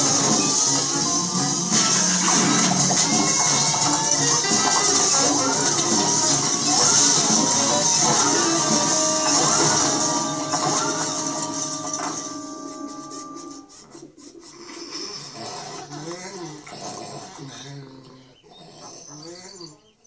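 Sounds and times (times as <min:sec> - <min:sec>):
cartoon soundtrack from television: 0:00.0 - 0:20.0.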